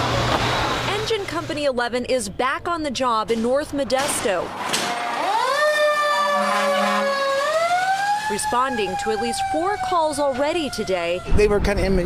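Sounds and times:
fire engine siren wailing: 4.8s - 12.0s.

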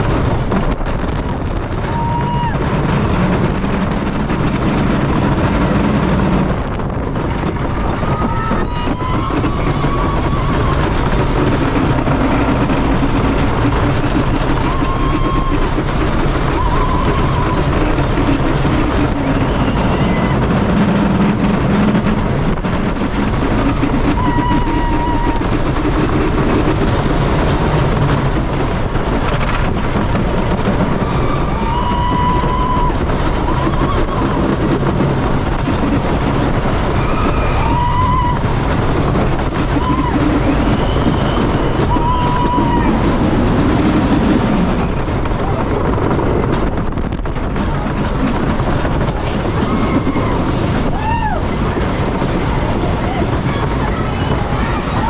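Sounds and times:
roller coaster rumble and rattle: 0.0s - 55.0s.

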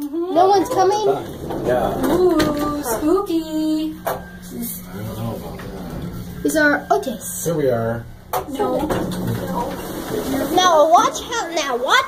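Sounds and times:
steady low hum: 0.0s - 12.0s
voices talking: 0.0s - 12.0s.

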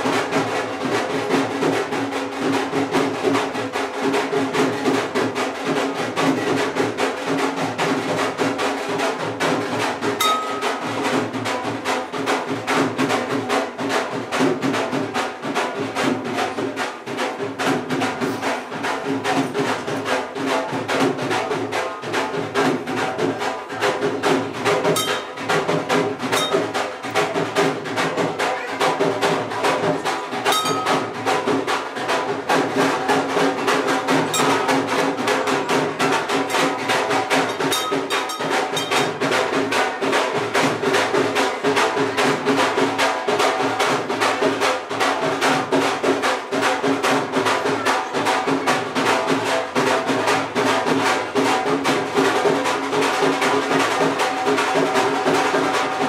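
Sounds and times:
devotional music with fast percussion: 0.0s - 56.0s
temple bell ringing: 10.2s - 10.9s, 25.0s - 25.4s, 26.3s - 26.8s, 30.5s - 31.1s, 34.4s - 34.8s, 37.6s - 39.1s.

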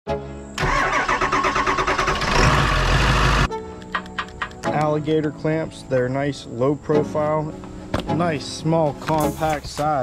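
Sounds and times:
music: 0.1s - 10.0s
engine cranking and starting: 0.6s - 3.5s.

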